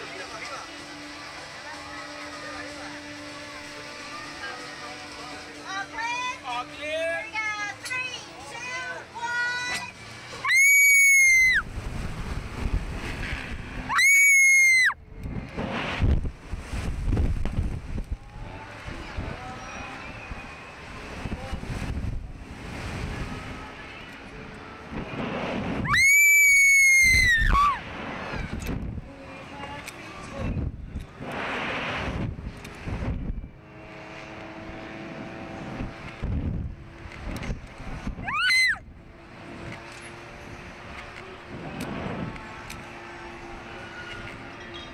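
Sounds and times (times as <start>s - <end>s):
wind rushing on microphone: 11.5s - 13.9s, 15.0s - 26.0s, 26.7s - 42.9s.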